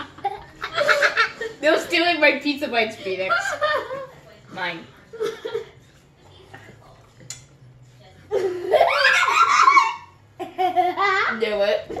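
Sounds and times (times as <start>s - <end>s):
high-pitched laughter: 8.4s - 11.3s.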